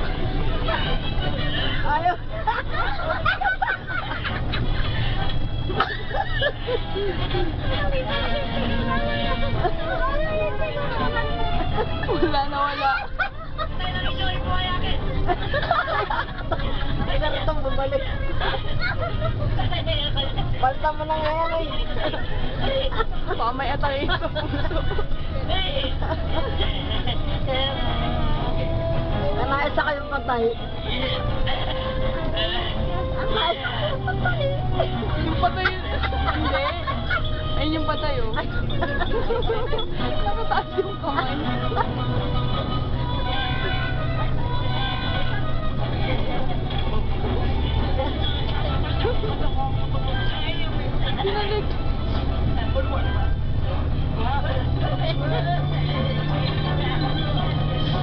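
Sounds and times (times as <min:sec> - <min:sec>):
bus engine and road noise: 0:00.0 - 0:58.0.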